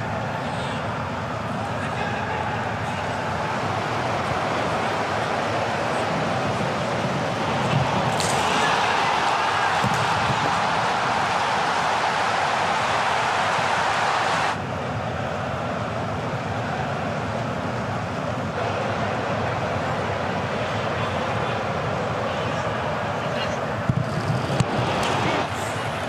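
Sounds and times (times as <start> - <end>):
stadium crowd noise: 0.0 - 26.0.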